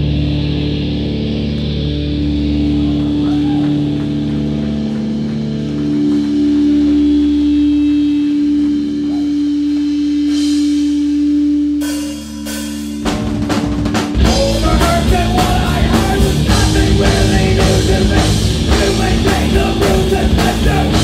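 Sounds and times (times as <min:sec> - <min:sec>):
electric guitar and bass drone: 0:00.0 - 0:21.0.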